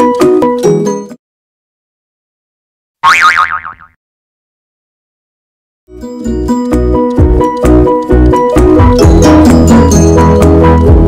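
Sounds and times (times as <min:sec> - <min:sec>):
cartoon boing: 0:03.0 - 0:04.0.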